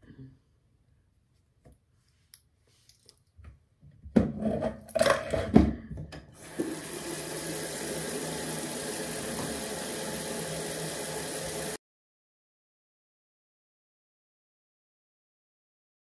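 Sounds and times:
objects clattering: 4.1s - 6.1s
water running: 6.4s - 11.8s.

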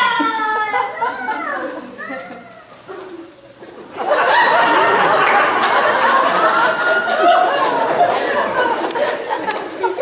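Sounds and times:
audience laughter: 3.6s - 10.0s.

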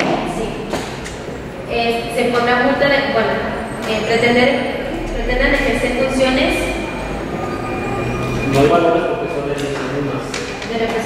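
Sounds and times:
background noise: 0.0s - 11.0s
hum of held tones: 3.4s - 9.5s.

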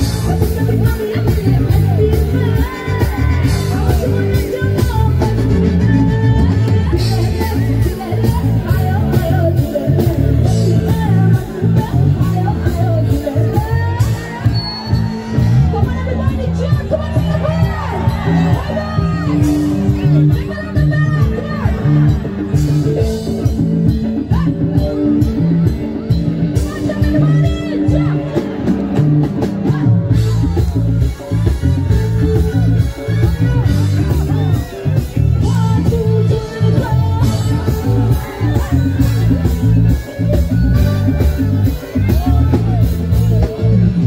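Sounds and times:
woman singing: 0.0s - 21.7s, 31.8s - 39.8s
guitar: 0.0s - 44.0s
heavy bass line: 0.0s - 44.0s
live rock band playing: 0.0s - 44.0s.

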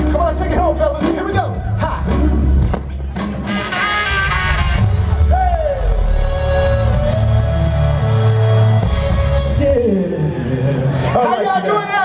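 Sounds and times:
drums: 0.0s - 10.0s
bass: 0.0s - 11.2s.

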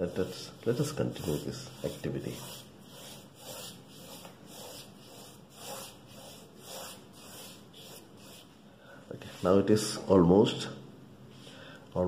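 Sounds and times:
wet brush swishing on paper: 0.0s - 8.6s.

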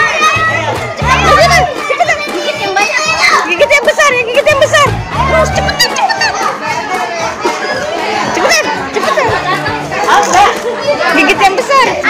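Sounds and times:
children shouting and cheering: 0.0s - 12.0s
music with heavy bass: 0.4s - 1.8s, 4.4s - 5.9s.

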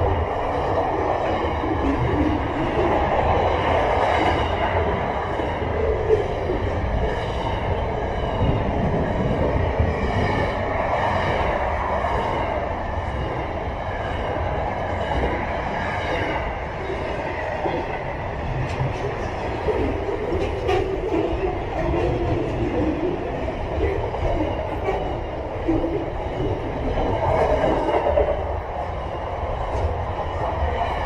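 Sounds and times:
train wheels rumbling on rail: 0.0s - 31.0s.

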